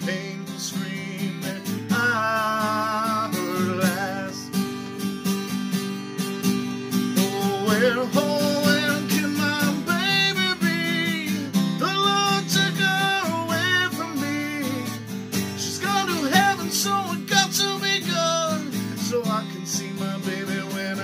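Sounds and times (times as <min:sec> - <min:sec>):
acoustic guitar strumming: 0:00.0 - 0:21.0
man singing: 0:00.0 - 0:21.0.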